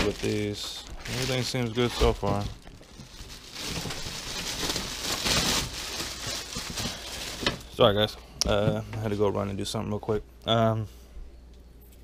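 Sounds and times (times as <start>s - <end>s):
plastic bag crinkling: 0.0s - 8.2s.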